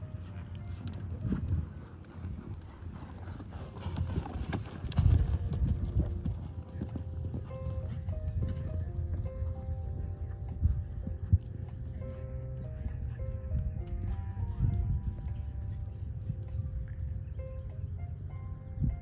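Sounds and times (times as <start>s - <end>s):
horse hoofbeats cantering on sand: 0.0s - 17.7s
background music: 0.0s - 19.0s.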